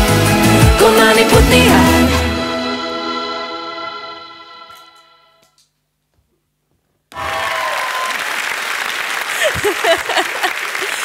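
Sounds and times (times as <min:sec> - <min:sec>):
applause: 0:07.1 - 0:11.0.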